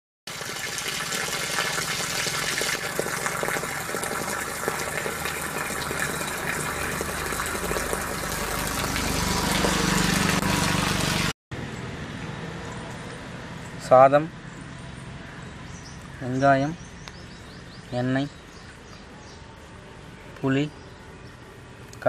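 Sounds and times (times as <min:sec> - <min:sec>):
water pouring from pipe and splashing: 0:00.3 - 0:11.3.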